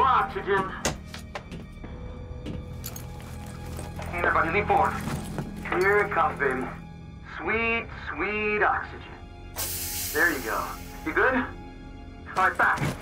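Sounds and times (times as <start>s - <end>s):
loud hiss: 9.6s - 11.1s.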